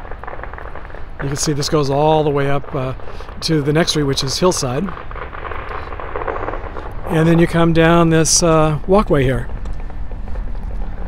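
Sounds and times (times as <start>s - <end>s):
distant firecrackers popping: 0.0s - 11.0s
low rumble: 0.0s - 11.0s.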